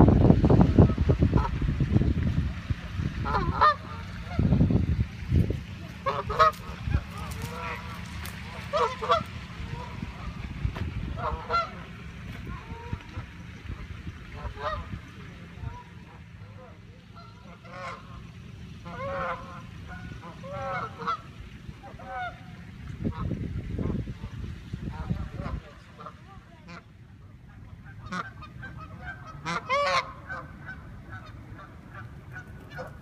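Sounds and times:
low rumble: 0:00.0 - 0:26.3
geese honking: 0:00.7 - 0:01.7, 0:02.7 - 0:33.0.

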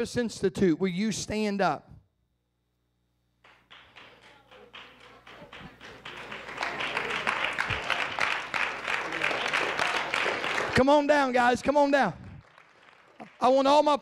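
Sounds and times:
congregation clapping: 0:03.4 - 0:14.0.

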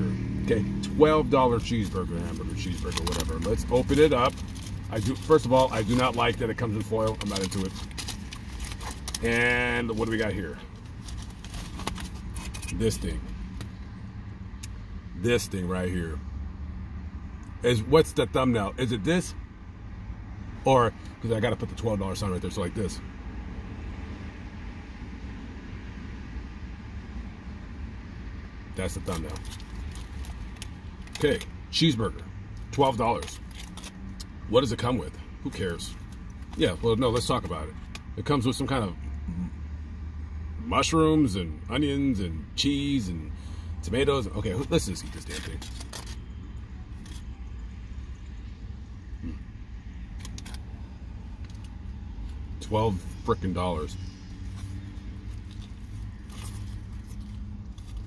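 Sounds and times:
car cabin low rumble: 0:00.0 - 0:16.3
foil wrapper rustling and clicking: 0:01.8 - 0:10.2, 0:10.8 - 0:12.8, 0:29.1 - 0:31.2, 0:33.2 - 0:34.0, 0:44.9 - 0:46.2, 0:50.2 - 0:50.6.

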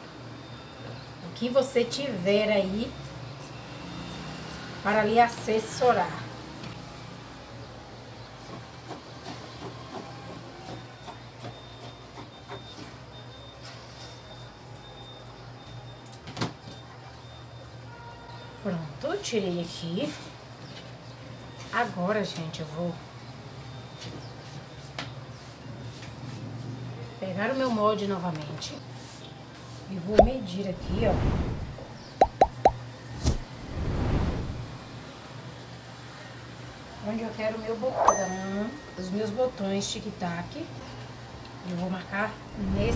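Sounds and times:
vehicle passing: 0:30.3 - 0:35.2, 0:42.4 - 0:42.9
low steady hum: 0:42.4 - 0:42.9.

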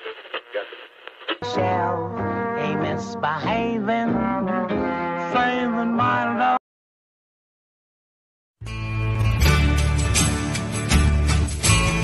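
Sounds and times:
man's voice on old radio: 0:00.0 - 0:01.8.

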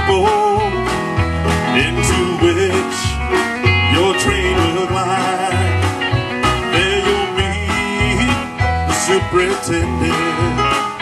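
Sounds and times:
lead line with bending notes: 0:00.0 - 0:11.0
live country band music: 0:00.0 - 0:11.0
pulsing bass and drums: 0:00.0 - 0:11.0.

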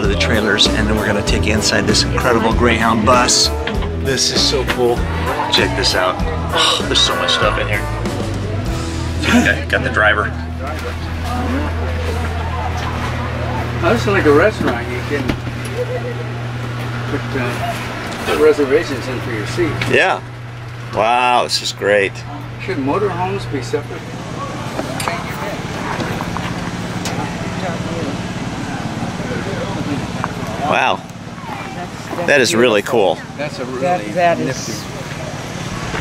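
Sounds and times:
people talking: 0:00.0 - 0:08.6, 0:09.2 - 0:20.3, 0:20.9 - 0:36.0
background voices: 0:00.0 - 0:09.7
low hum: 0:00.0 - 0:33.4
engine running steadily: 0:00.0 - 0:36.0.

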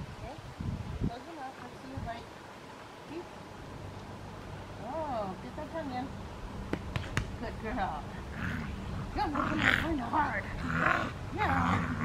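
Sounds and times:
puppy growling: 0:08.2 - 0:12.0.

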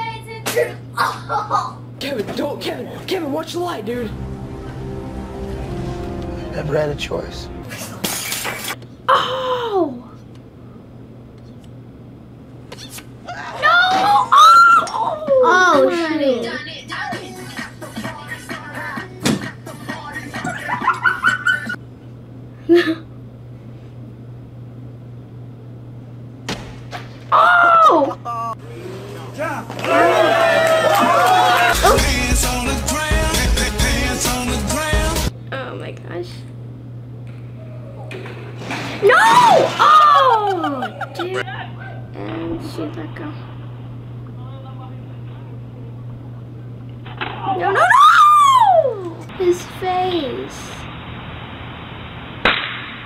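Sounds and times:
low steady hum: 0:00.0 - 0:16.5.

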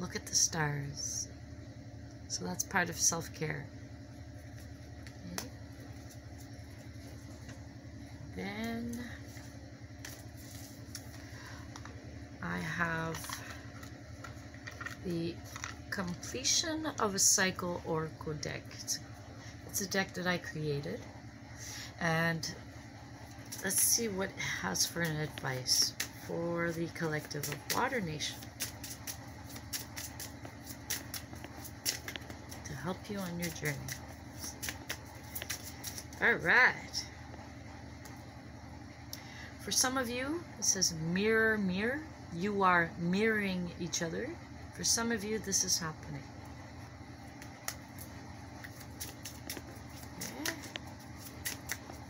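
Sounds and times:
low steady hum: 0:00.0 - 0:52.0
cards being shuffled: 0:25.0 - 0:36.2, 0:47.4 - 0:52.0.

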